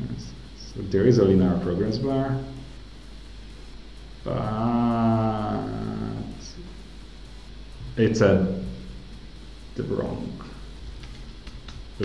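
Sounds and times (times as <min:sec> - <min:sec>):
low steady hum: 0:00.0 - 0:12.0
man speaking hesitantly: 0:04.2 - 0:06.7.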